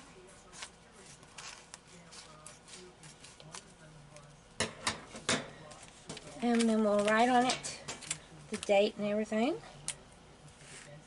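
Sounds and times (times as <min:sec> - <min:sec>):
plastic crinkling: 0:05.9 - 0:08.7.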